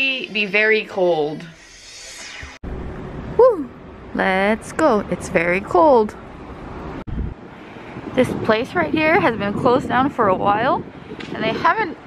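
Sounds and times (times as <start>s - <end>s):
wind on microphone: 7.0s - 12.0s.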